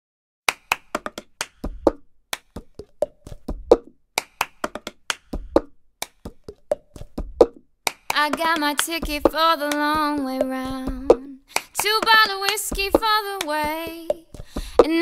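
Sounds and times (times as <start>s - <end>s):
hand claps: 0.5s - 14.4s.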